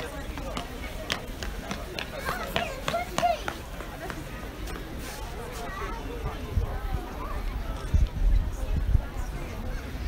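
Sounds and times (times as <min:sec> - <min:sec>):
voices talking indistinctly: 0:00.0 - 0:10.0.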